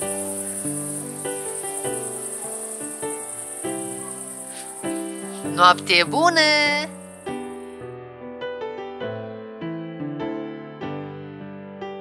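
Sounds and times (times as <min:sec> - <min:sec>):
crickets chirping: 0:00.0 - 0:07.9.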